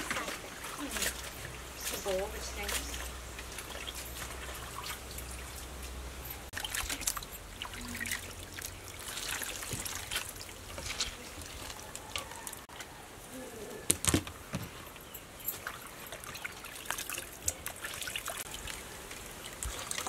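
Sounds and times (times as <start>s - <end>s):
hands washing mushrooms: 0.0s - 12.7s, 14.3s - 20.0s
water splashing in metal basin: 0.0s - 12.7s, 15.4s - 20.0s.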